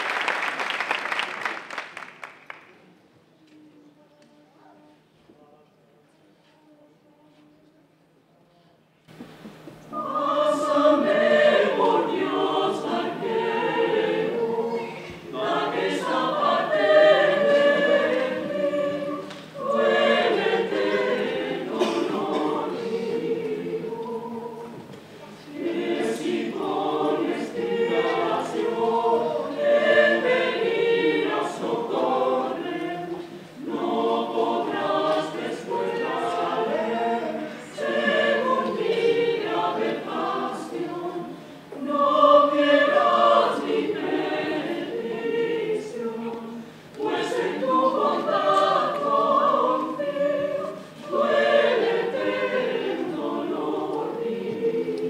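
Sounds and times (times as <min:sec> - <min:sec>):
mixed choir singing: 0:09.8 - 0:55.0.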